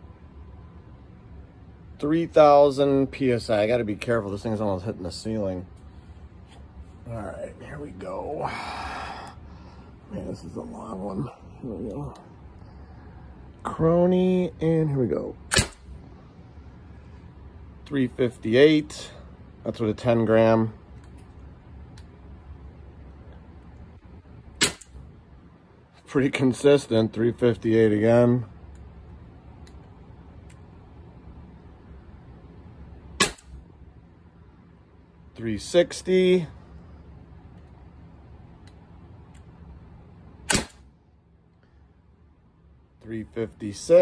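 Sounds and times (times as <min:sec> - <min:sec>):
pneumatic gun pop: 0:15.5 - 0:15.9, 0:24.6 - 0:25.0, 0:33.2 - 0:33.6, 0:40.4 - 0:40.9.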